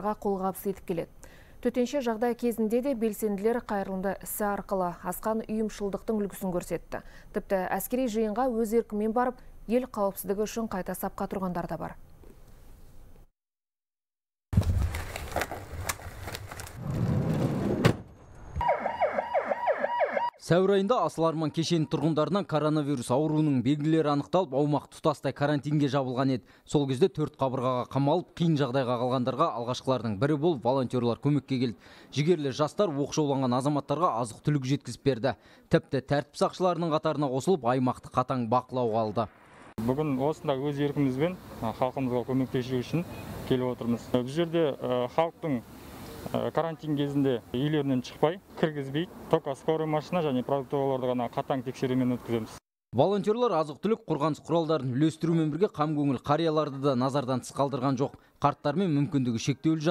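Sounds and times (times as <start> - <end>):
ambulance siren yelping: 18.6 - 20.4
man talking: 20.4 - 35.2, 35.8 - 45.7, 46.3 - 59.9.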